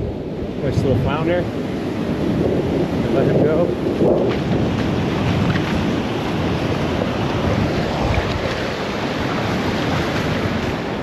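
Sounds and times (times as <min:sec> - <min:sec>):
wind buffeting microphone: 0:00.0 - 0:11.0
surf breaking on sand: 0:00.4 - 0:11.0.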